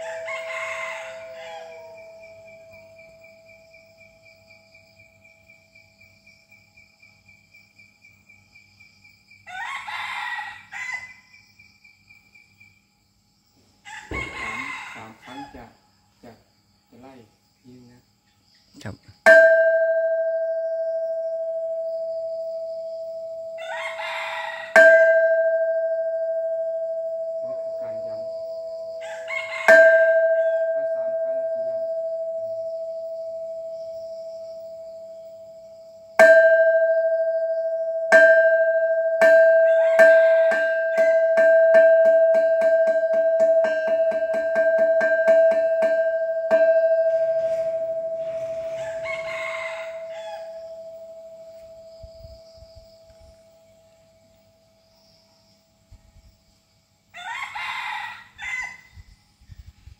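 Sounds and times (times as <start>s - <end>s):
rooster crowing: 0.0s - 3.5s, 9.4s - 11.4s, 13.8s - 15.8s, 23.5s - 25.7s, 28.9s - 31.0s, 39.2s - 41.4s, 46.6s - 51.0s, 57.1s - 59.0s
temple bell struck with mallet: 19.3s - 21.9s, 24.8s - 29.0s, 29.7s - 33.7s, 36.2s - 48.3s.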